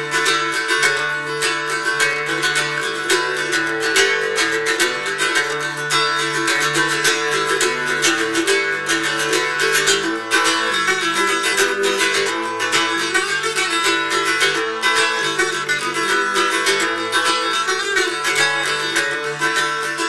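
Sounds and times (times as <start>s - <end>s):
mandolin playing instrumental tune: 0.0s - 20.0s.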